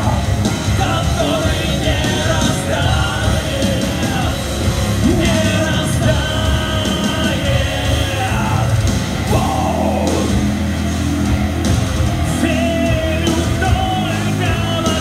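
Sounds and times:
person singing and yelling: 0.0 - 10.7, 12.3 - 15.0
live rock band playing: 0.0 - 15.0.

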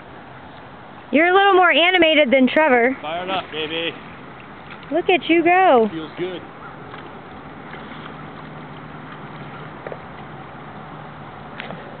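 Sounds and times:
open-air noise over water: 0.0 - 12.0.

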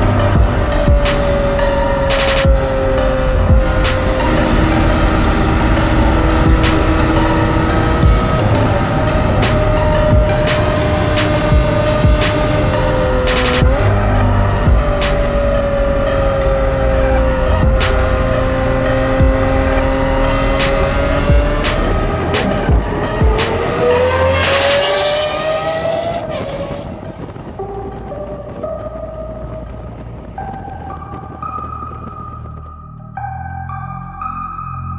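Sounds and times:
slow electronic synth notes: 0.0 - 26.8
sports car engine accelerating: 0.0 - 33.3
music track: 0.0 - 34.9.

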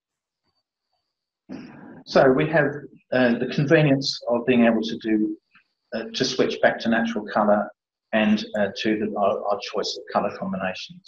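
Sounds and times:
man speaking: 1.5 - 5.4, 6.0 - 11.0.

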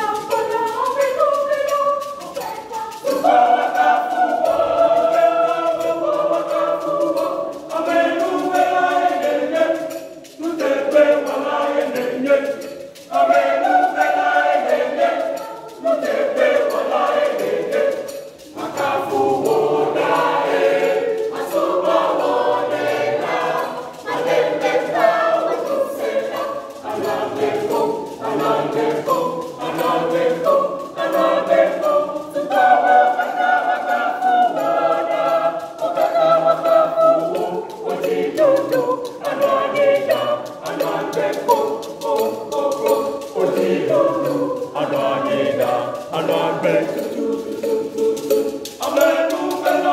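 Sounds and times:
children's choir singing: 0.0 - 49.9.

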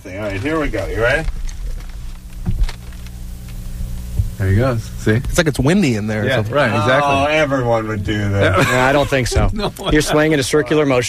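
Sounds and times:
low electrical hum: 0.0 - 11.0.

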